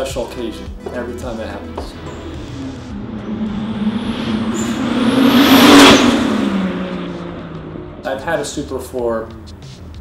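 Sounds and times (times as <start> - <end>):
car driving past: 1.7 - 8.4.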